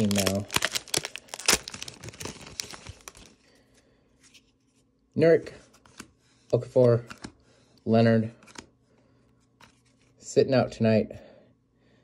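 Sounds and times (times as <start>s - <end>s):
sharp foil snaps: 0.0s - 3.2s
foil wrapper crinkling: 0.0s - 3.4s.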